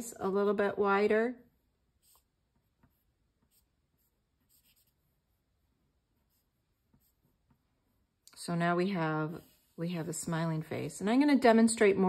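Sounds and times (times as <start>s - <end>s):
drawing stick scratching paper: 1.5s - 8.2s, 8.9s - 10.1s.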